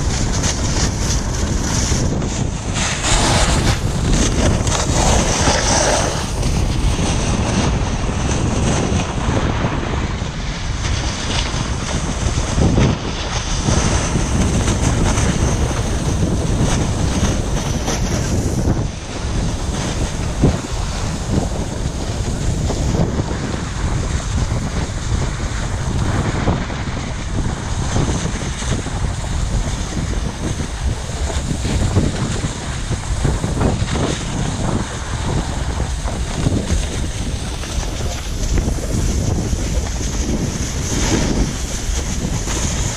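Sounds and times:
snowboard edges scraping snow: 0:00.0 - 0:42.9
wind buffeting microphone: 0:00.0 - 0:42.9.

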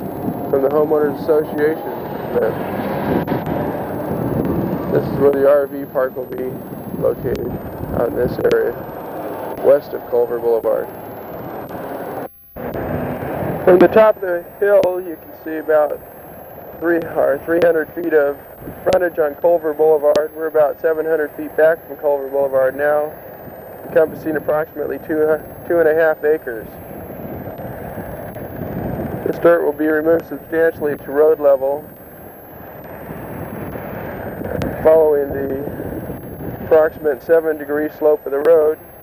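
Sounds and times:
road traffic: 0:00.0 - 0:39.0
wind noise on microphone: 0:00.0 - 0:39.0.

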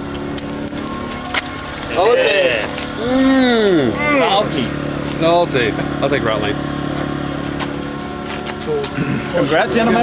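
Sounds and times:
coin clinking on concrete: 0:00.4 - 0:01.5.

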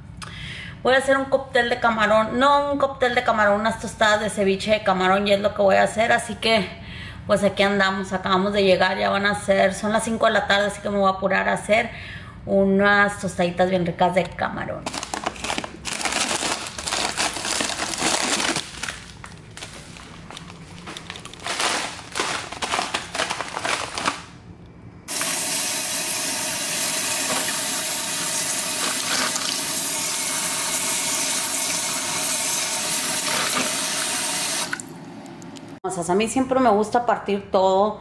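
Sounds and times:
plastic packaging rustling: 0:14.8 - 0:24.4, 0:28.6 - 0:29.6
faucet running into bowl: 0:25.1 - 0:35.0.

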